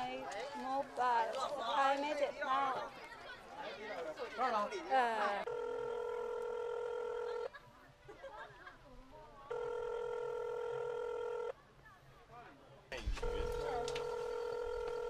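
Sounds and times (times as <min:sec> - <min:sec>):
phone call tone: 0:05.4 - 0:07.5, 0:09.5 - 0:11.5, 0:13.0 - 0:15.0.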